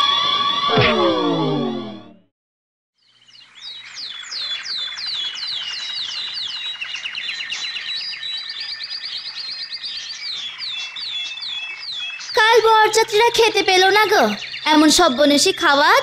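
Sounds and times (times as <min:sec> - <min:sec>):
small birds chirping: 0:03.0 - 0:16.0
dense bird trill: 0:03.1 - 0:16.0.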